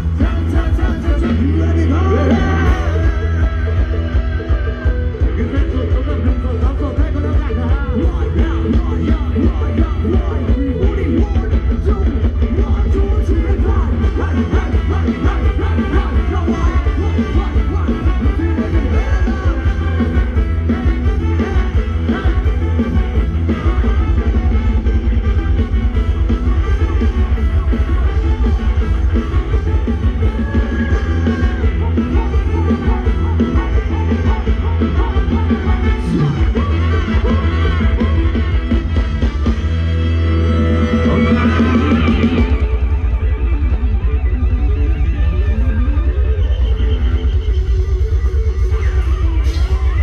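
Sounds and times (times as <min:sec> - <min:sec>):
live band dance music: 0:00.0 - 0:50.0.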